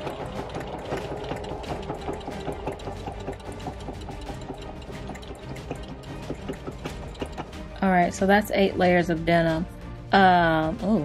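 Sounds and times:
sewing machine stitching: 0.0s - 7.6s.

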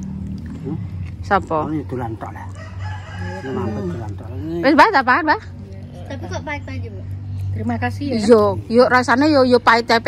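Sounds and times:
rooster crowing: 2.4s - 4.1s.

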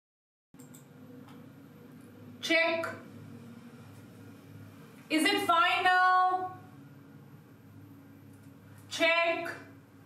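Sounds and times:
faint background hum and hiss: 0.6s - 10.0s.

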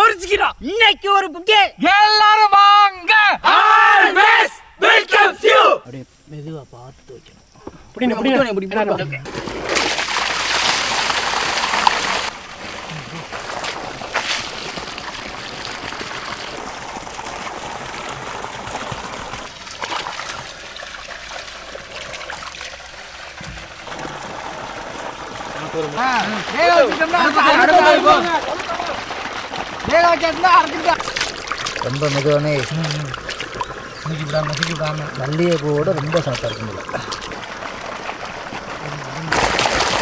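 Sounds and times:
men shouting together: 1.8s - 5.9s, 26.5s - 28.9s
water trickling and splashing: 7.1s - 40.0s
sharp water splashes: 9.2s - 40.0s.

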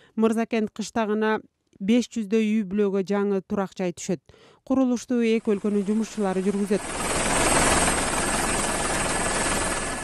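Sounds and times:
helicopter in flight: 5.3s - 10.0s.

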